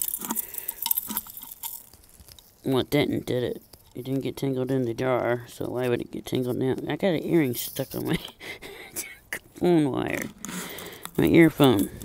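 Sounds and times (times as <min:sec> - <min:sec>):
metal chain clinking: 0:00.0 - 0:02.0
plastic bag crinkling: 0:00.0 - 0:08.4, 0:10.0 - 0:12.0.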